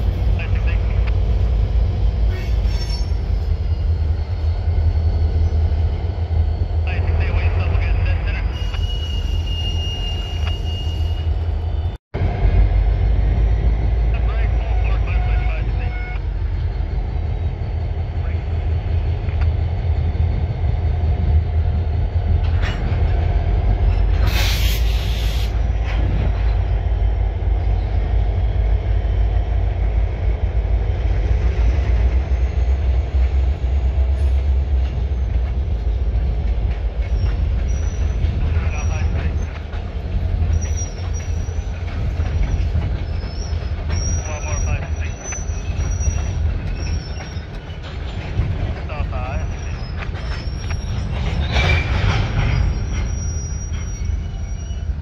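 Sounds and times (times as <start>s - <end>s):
train wheels rumbling on rail: 0.0s - 55.0s
loud hiss: 24.2s - 25.6s
wheels squealing: 37.0s - 39.8s, 40.4s - 48.5s, 49.4s - 55.0s.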